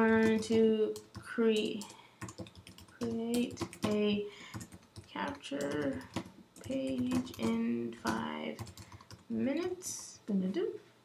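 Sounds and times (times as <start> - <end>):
computer keyboard typing: 0.0 - 9.3.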